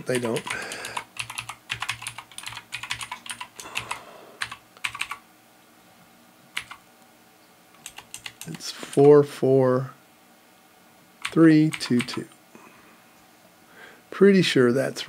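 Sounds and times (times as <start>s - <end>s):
typing on computer keyboard: 0.0s - 5.2s, 6.6s - 6.8s, 7.8s - 9.1s, 11.2s - 12.3s.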